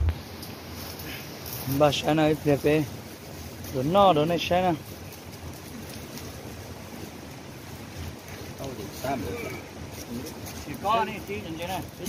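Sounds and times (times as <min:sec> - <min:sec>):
quiet voices talking: 0:00.9 - 0:12.0.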